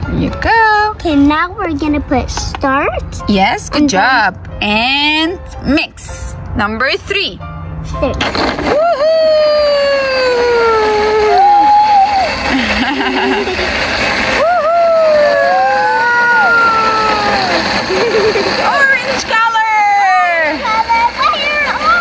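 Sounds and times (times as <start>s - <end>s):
blender running: 8.2s - 22.0s.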